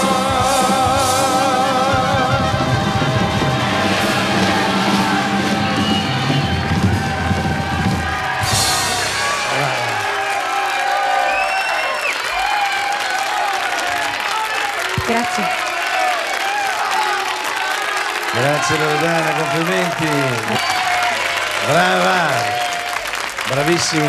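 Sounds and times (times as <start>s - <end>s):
pop band with drums playing: 0.0s - 10.1s, 15.0s - 15.5s
audience applauding and cheering: 0.0s - 24.0s.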